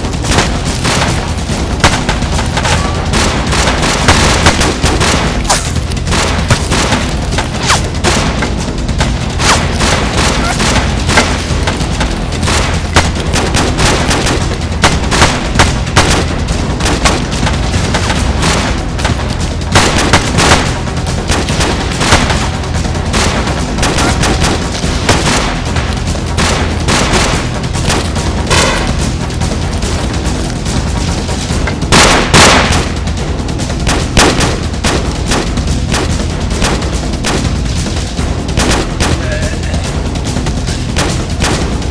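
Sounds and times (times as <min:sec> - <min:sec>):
booming gunshots: 0:00.0 - 0:41.9
low rumble: 0:00.0 - 0:41.9.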